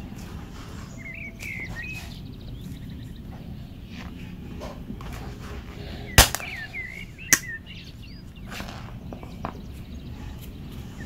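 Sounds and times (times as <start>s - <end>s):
birds chirping: 0.0s - 11.0s
low background hum: 0.0s - 11.0s.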